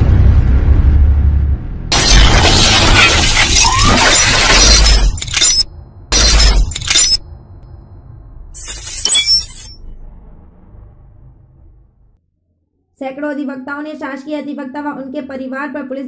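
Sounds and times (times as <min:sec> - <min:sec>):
low music rumble: 0:00.0 - 0:01.9
deep bass: 0:00.0 - 0:02.0
bright glassy crash: 0:01.9 - 0:07.2.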